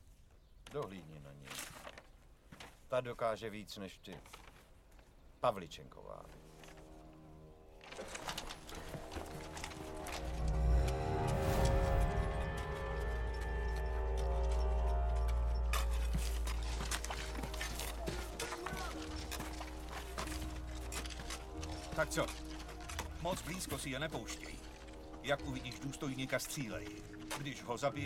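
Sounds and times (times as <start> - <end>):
film score with held tones: 0.0 - 28.0
small knocks and clatters: 0.6 - 2.9, 7.8 - 10.9
deep rumble: 9.0 - 18.4.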